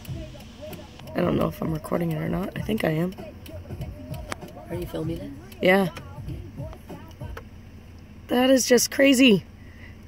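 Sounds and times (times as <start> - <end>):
low steady rumble: 0.0 - 10.0.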